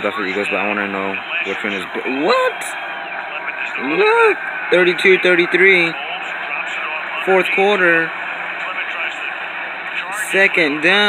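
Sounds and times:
faint commentary: 0.0 - 11.0
stadium crowd noise: 0.0 - 11.0.

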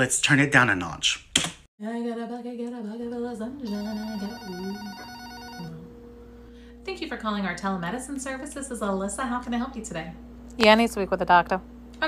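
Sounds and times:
woman singing casually: 1.8 - 6.0
telephone ringing: 3.7 - 6.0.

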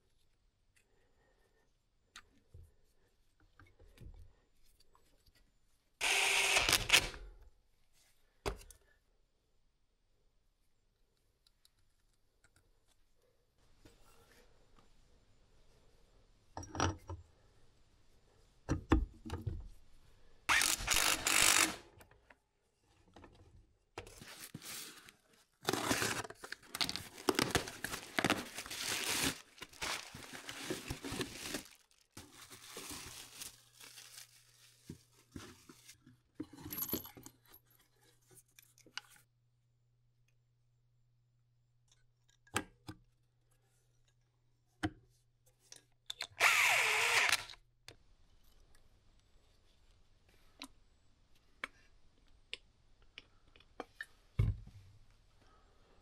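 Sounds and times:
packaging crinkling and tearing: 25.6 - 34.9.

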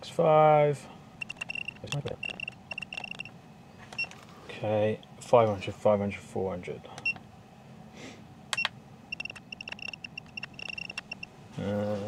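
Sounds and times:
short high electronic beeps: 1.2 - 3.3, 8.6 - 11.3
sharp clicks: 1.2 - 4.2, 8.5 - 11.3.

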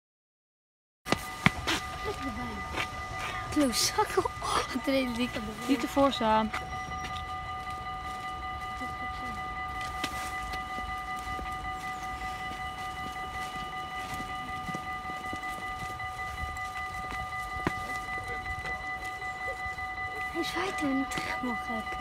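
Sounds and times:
high-pitched train whine: 1.1 - 22.0
train rumble: 1.1 - 22.0.

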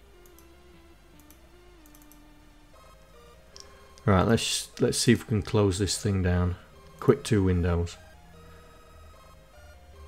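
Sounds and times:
slow background music: 0.0 - 10.0
soft mouse clicks: 0.2 - 2.3, 3.5 - 4.1.

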